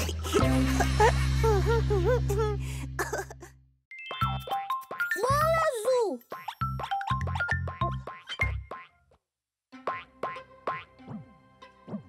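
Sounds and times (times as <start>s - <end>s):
light children's music: 3.9s - 8.8s
cartoon springy boings: 6.3s - 9.0s.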